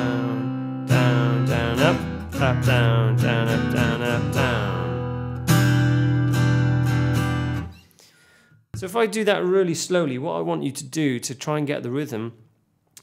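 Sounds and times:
acoustic guitar strumming: 0.0 - 7.8.

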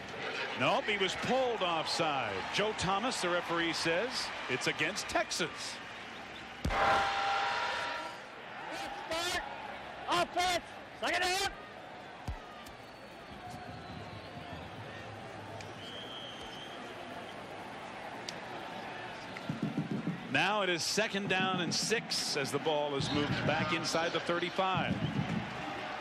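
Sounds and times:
stadium crowd murmur: 0.0 - 26.0.

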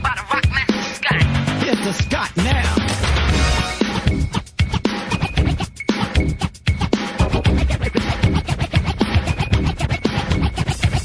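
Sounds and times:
fast drum beat: 0.0 - 11.0
turntable scratching: 3.8 - 11.0.

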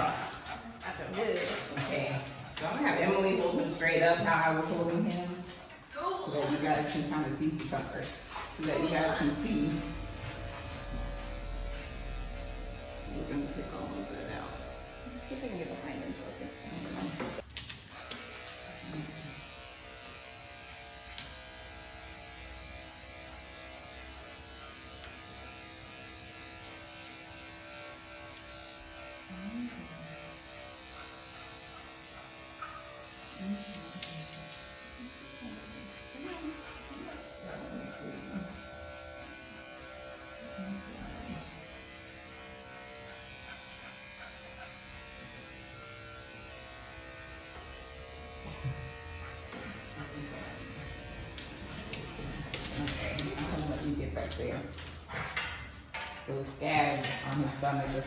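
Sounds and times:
electric clippers shaving fur: 0.0 - 58.0.

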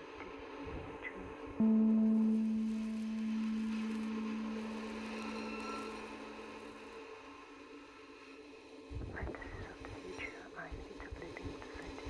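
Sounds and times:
low sustained tone: 1.6 - 7.8.

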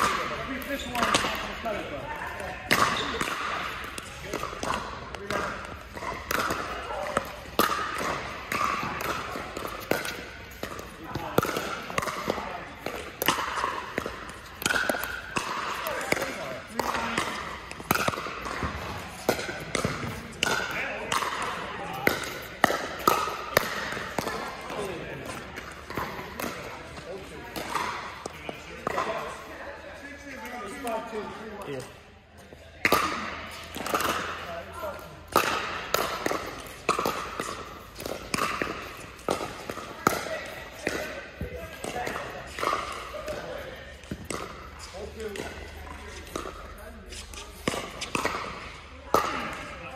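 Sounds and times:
ball bouncing on court: 0.0 - 29.4, 32.4 - 49.9.

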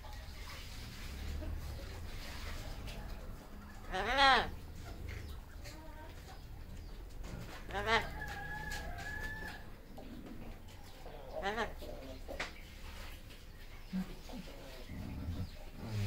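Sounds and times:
parrot calling: 3.7 - 5.0.

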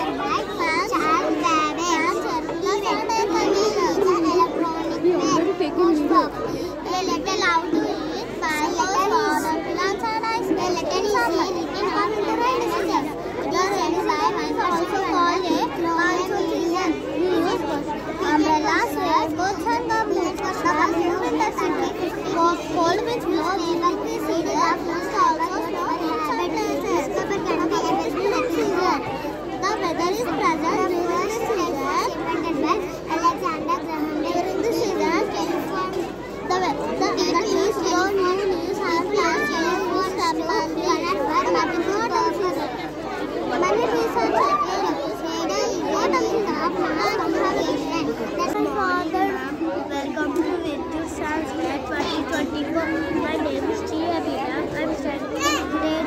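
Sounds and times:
babble of children speaking: 0.0 - 56.0
girl talking: 0.0 - 56.0.

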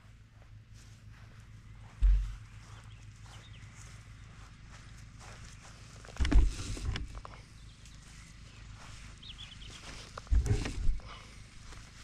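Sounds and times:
faint low hum: 0.0 - 12.0
footsteps on grass: 0.0 - 12.0
loud low thump: 2.0 - 2.4.

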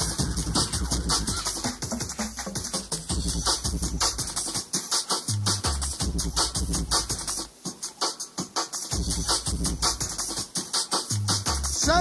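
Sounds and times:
breakbeat drums: 0.0 - 12.0.

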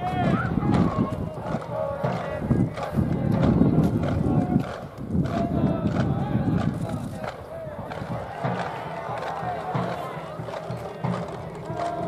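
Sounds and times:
voices calling out faintly: 0.0 - 12.0
wind buffeting microphone: 0.0 - 12.0.

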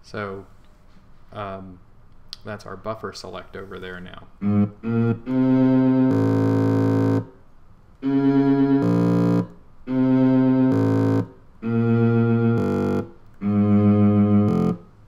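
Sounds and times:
electronic held tones: 4.4 - 7.3, 8.0 - 14.8.

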